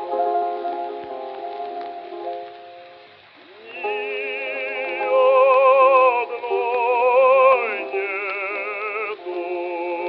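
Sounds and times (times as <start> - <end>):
operatic bass voice singing: 3.6 - 10.0.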